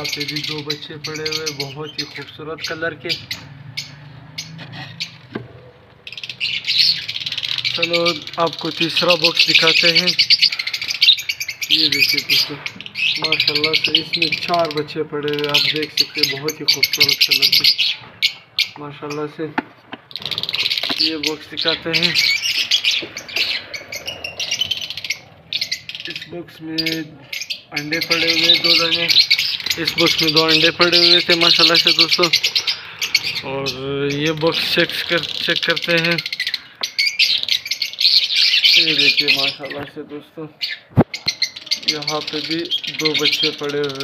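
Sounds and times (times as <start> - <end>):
parrots chirping: 0.0 - 19.3, 19.9 - 39.9, 40.6 - 44.0
lovebirds chattering: 0.0 - 44.0.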